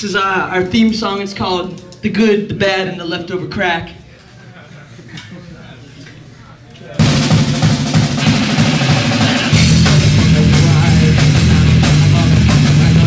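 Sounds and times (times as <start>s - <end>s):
drum kit: 7.0s - 13.0s
electric guitars: 9.0s - 13.0s
bass guitar: 9.1s - 13.0s.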